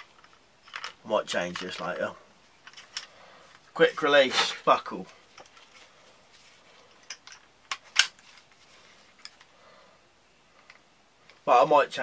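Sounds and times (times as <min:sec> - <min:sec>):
quiet rustling: 0:00.0 - 0:11.8.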